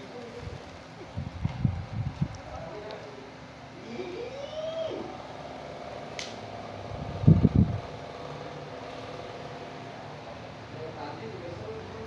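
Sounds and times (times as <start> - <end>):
kitchen fan humming: 0.0 - 12.0.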